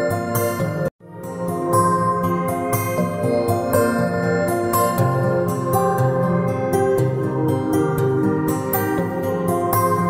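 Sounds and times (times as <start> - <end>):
keyboard background music: 0.0 - 10.0.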